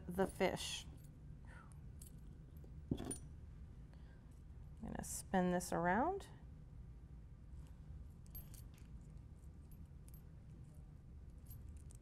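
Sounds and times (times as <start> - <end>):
metal lure parts handled: 2.9 - 3.2
metal clink: 2.9 - 3.3.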